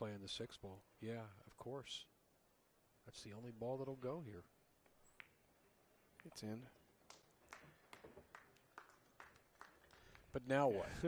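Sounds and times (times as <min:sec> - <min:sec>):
faint sparse clapping: 0:06.2 - 0:10.5.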